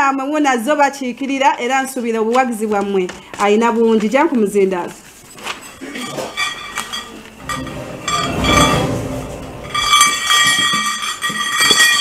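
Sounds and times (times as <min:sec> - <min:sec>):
metallic clinking and ringing: 0:06.2 - 0:12.0.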